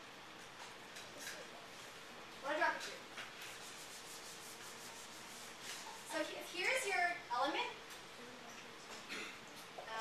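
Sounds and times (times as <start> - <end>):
rubbing on whiteboard: 3.4 - 6.4.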